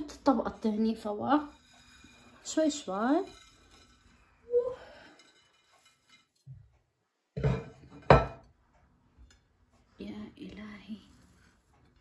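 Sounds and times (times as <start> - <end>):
ceramic plate set on countertop: 7.3 - 8.6.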